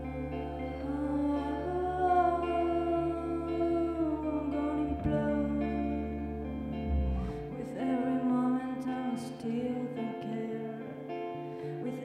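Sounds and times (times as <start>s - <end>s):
woman singing a long note: 0.0s - 6.2s
guitar and bass: 0.0s - 12.0s.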